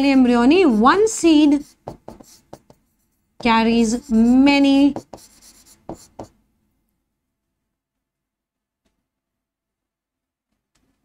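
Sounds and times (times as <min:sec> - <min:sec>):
chalk scratching on blackboard: 0:00.0 - 0:06.4
chalk taps: 0:00.6 - 0:02.8, 0:03.4 - 0:06.4.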